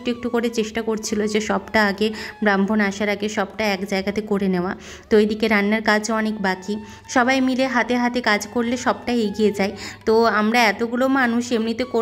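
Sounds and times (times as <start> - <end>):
woman speaking: 0.0 - 12.0.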